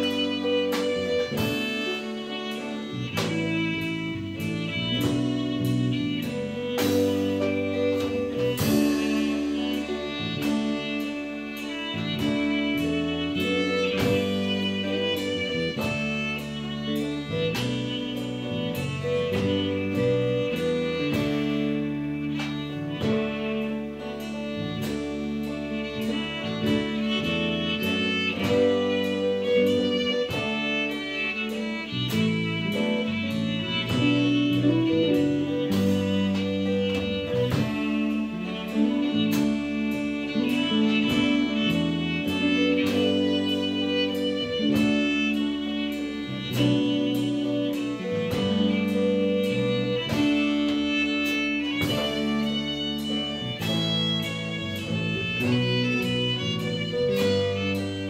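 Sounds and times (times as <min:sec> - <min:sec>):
drum kit steady beat: 0:00.0 - 0:58.0
fiddle melody: 0:00.0 - 0:58.0
guitars and bass guitar: 0:00.0 - 0:58.0.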